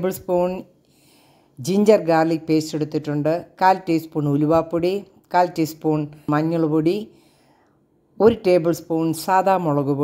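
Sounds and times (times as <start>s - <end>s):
person talking: 0.0s - 0.8s, 1.6s - 7.2s, 8.2s - 10.0s.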